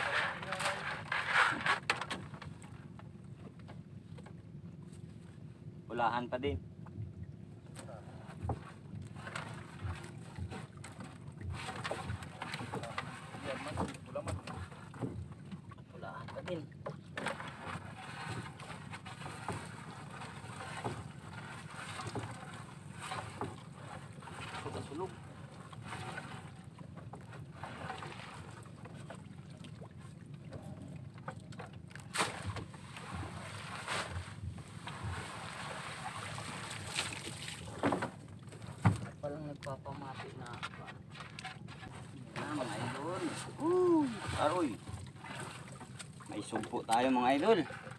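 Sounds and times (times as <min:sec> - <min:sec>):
water: 0:00.0 - 0:47.9.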